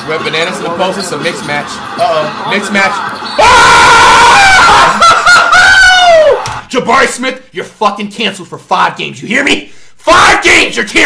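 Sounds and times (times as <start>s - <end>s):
man screaming: 3.4s - 6.4s.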